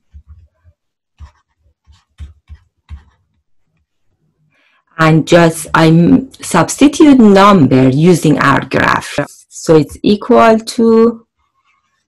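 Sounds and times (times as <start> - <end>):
stylus tapping on drawing tablet: 0.0 - 0.6, 1.2 - 3.9.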